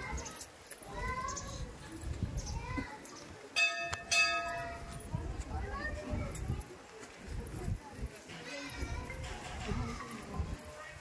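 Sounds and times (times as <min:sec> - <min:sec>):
metal bell ringing: 0:03.6 - 0:05.1.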